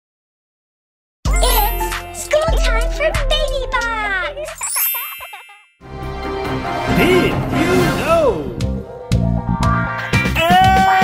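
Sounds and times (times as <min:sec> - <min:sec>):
children's jingle with sliding tones: 0:01.3 - 0:05.9
tune: 0:01.3 - 0:10.6
bright chime ding: 0:01.4 - 0:02.3.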